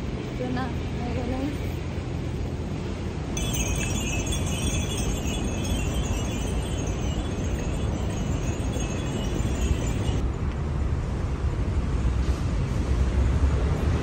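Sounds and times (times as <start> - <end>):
low city traffic rumble: 0.0 - 14.0
wind: 0.0 - 14.0
cicadas buzzing: 3.4 - 10.2.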